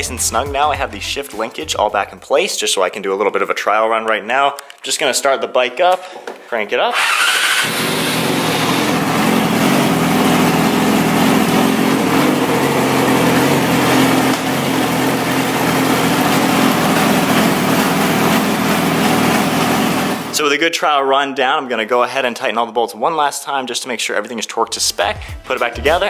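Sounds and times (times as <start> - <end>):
motorcycle engine idling: 7.5 - 20.3.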